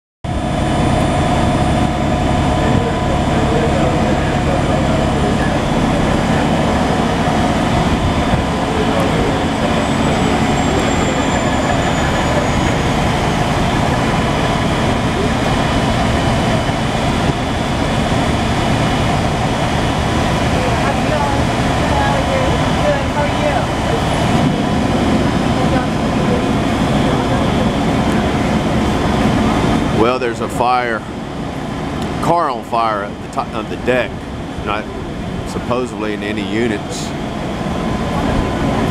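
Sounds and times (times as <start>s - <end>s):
diesel engines running: 0.2s - 38.9s.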